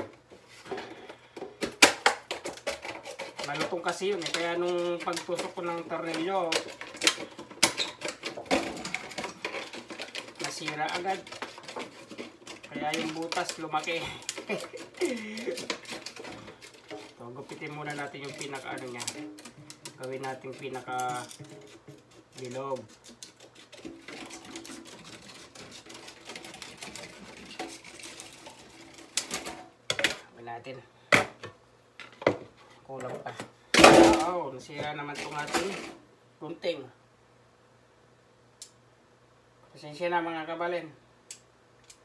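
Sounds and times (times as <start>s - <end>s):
plastic sharp crack: 1.6s - 2.9s.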